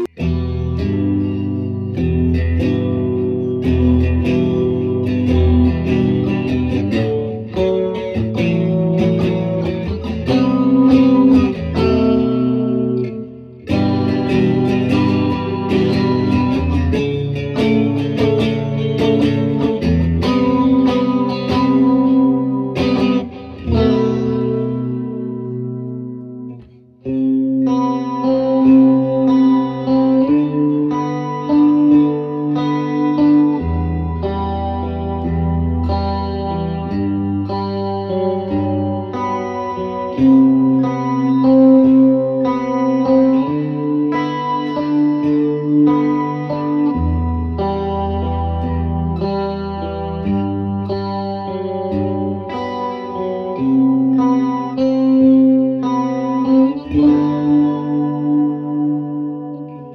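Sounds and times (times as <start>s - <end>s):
electric guitar playing: 0.0s - 59.9s.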